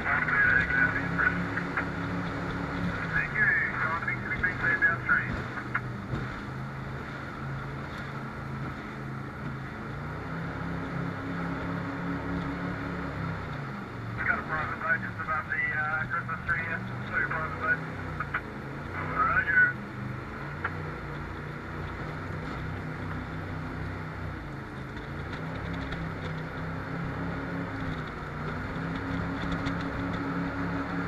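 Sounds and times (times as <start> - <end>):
person's voice: 0.0 - 1.7, 3.0 - 5.5, 14.2 - 17.9, 18.9 - 19.8
boat engine running: 0.0 - 31.0
water and wind noise: 0.0 - 31.0.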